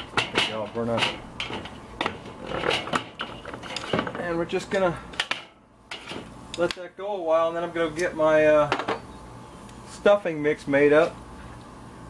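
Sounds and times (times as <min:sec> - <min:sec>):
wooden plank scraping metal grate: 0:00.0 - 0:04.4, 0:05.9 - 0:06.4.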